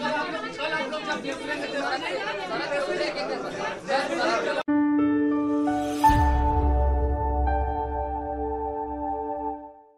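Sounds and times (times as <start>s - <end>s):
voices talking in a room: 0.0s - 4.7s.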